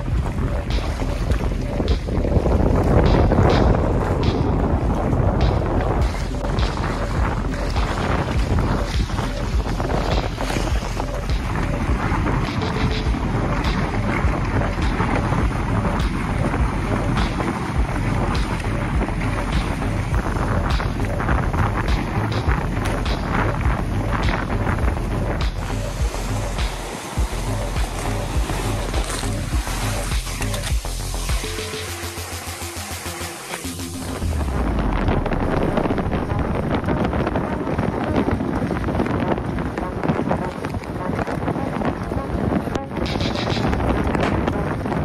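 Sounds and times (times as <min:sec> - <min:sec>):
wind buffeting microphone: 0:00.0 - 0:31.6, 0:33.7 - 0:45.0
music with steady low beat: 0:00.0 - 0:45.0
water rushing along hulls: 0:00.0 - 0:45.0.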